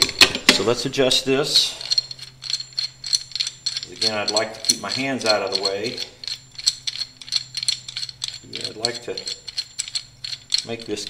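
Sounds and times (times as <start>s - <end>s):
faint steady hum: 0.0s - 11.0s
clamp clicking and ratcheting: 1.9s - 11.0s.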